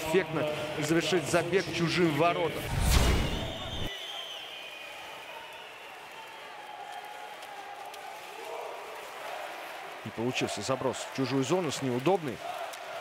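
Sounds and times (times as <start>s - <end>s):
faint arena crowd noise: 0.0s - 13.0s.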